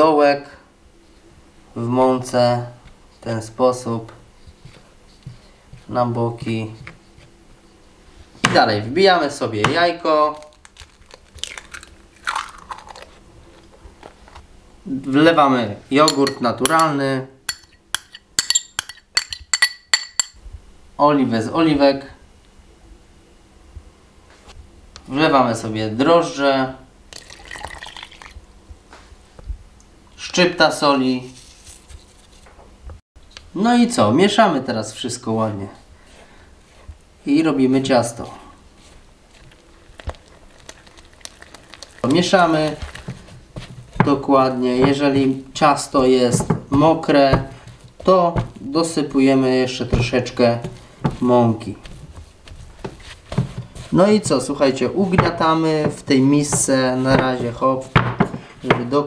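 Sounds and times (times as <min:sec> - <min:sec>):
eggshell cracking: 0:10.3 - 0:13.1, 0:39.5 - 0:42.8
liquid pouring into flour: 0:27.1 - 0:28.4, 0:39.9 - 0:43.1
spatula scraping dough: 0:42.1 - 0:58.7.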